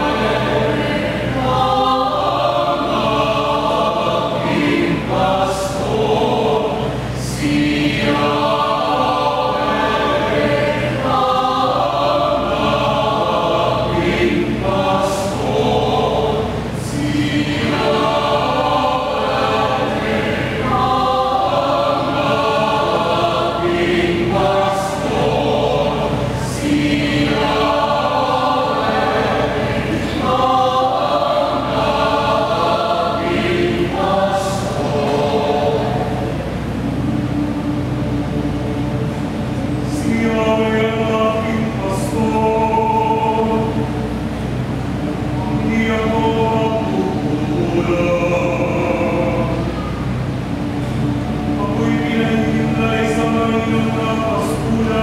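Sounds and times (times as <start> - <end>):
mixed choir singing a hymn: 0.0 - 55.0.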